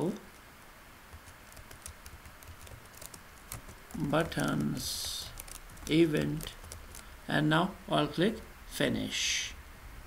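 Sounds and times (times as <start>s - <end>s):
computer keyboard typing: 1.1s - 7.2s.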